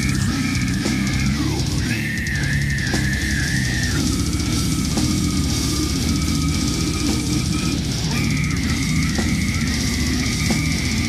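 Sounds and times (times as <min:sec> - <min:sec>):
death metal music: 0:00.0 - 0:11.0
steady high tone: 0:00.0 - 0:11.0.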